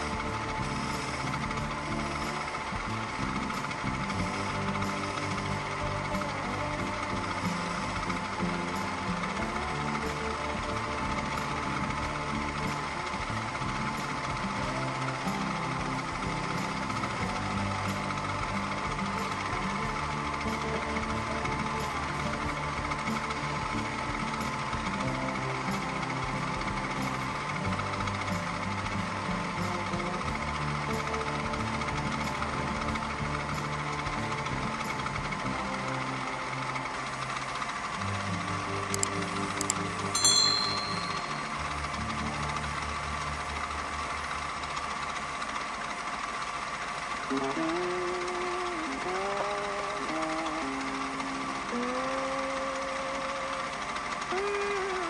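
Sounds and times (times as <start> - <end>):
background music: 0.0 - 55.0
turning tool cutting wood: 0.0 - 55.0
wood lathe running: 0.0 - 55.0.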